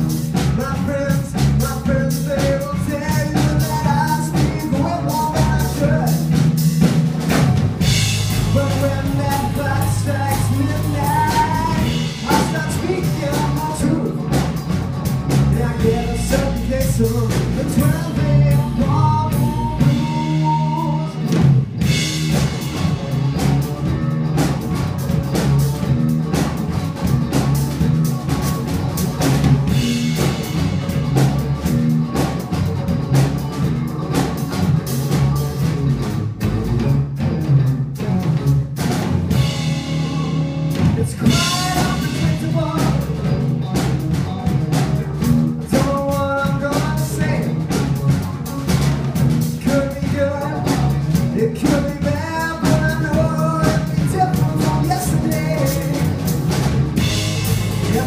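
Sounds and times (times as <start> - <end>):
drum kit beat: 0.0 - 58.0
electric bass: 0.0 - 58.0
electric guitar: 0.0 - 58.0.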